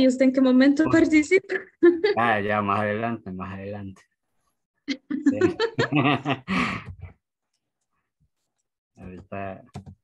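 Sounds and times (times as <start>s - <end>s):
person speaking: 0.8s - 3.0s, 4.9s - 6.2s.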